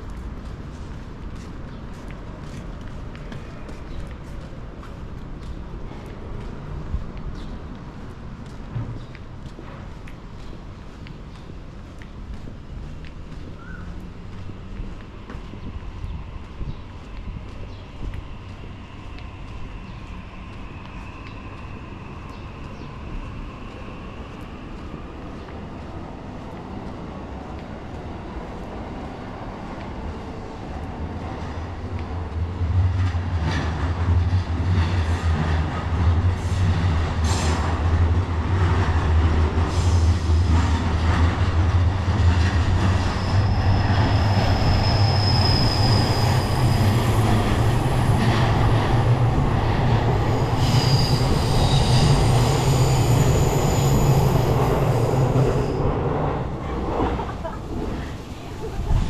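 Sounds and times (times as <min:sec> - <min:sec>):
train rumbling past: 0:00.0 - 0:59.0
high wheel squeals: 0:42.9 - 0:47.9, 0:50.1 - 0:56.2.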